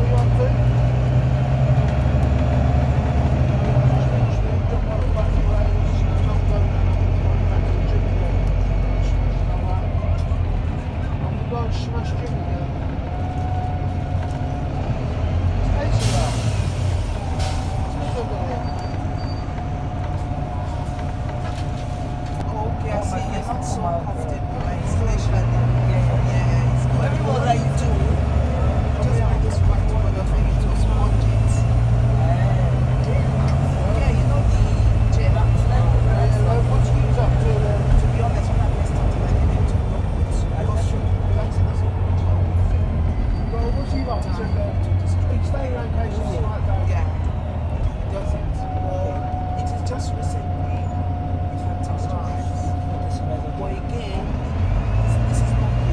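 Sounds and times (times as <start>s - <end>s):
bus diesel engine accelerating: 0.0s - 55.9s
passengers chattering: 0.0s - 55.9s.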